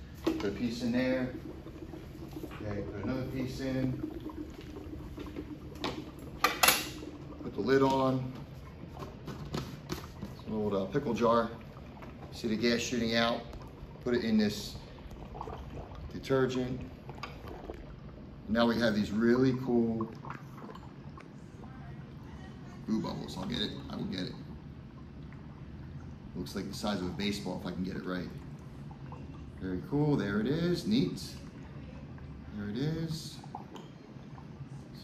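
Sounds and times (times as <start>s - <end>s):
dry ice bubbling in water: 0.0s - 35.0s.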